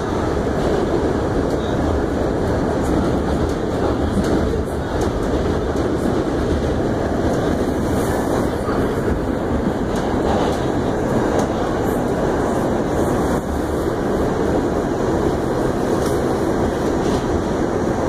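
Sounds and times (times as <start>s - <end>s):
train wheels on rails: 0.0s - 18.0s.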